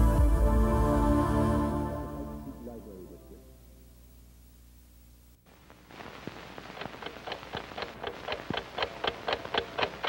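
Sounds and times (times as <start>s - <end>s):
film soundtrack hiss: 0.0s - 10.0s
clock ticking: 6.6s - 10.0s.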